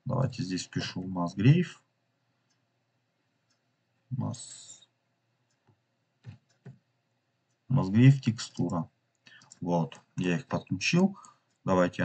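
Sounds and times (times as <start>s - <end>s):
person speaking: 0.0s - 1.8s, 4.1s - 4.8s, 7.7s - 12.0s.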